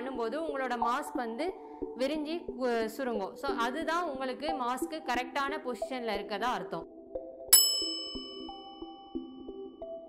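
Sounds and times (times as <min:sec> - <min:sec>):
soft background music: 0:00.0 - 0:10.0
bright chime: 0:07.5 - 0:09.4.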